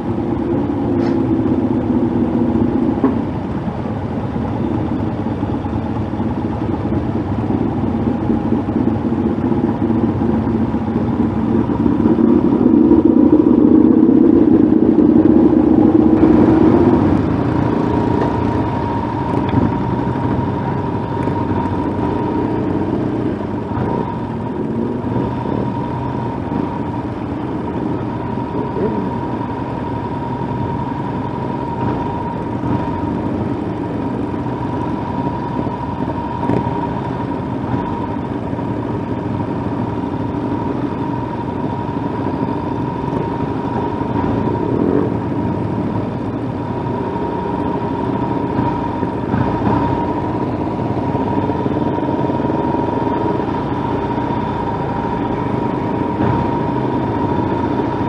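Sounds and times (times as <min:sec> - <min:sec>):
motorcycle engines running: 0:00.0 - 0:58.0
steady whine: 0:00.0 - 0:58.0.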